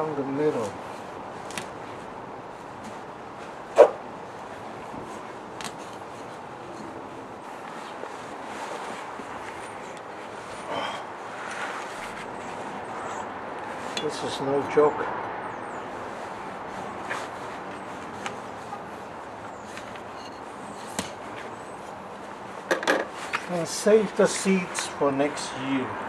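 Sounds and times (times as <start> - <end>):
outdoor background noise: 0.0 - 26.0.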